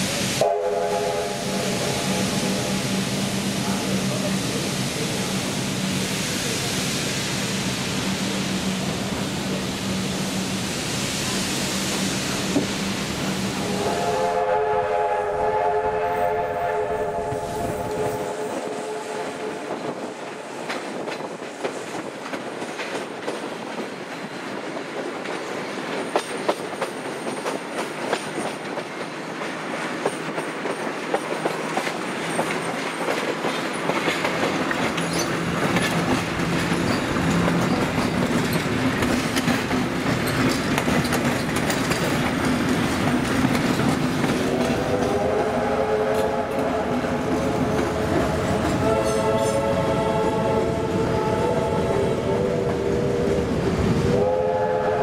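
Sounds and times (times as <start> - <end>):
moving train rumble: 0.0 - 55.0
train whistle chord: 0.2 - 2.8, 13.6 - 19.8, 44.5 - 55.0
wheels clicking over rail joints: 20.6 - 44.8.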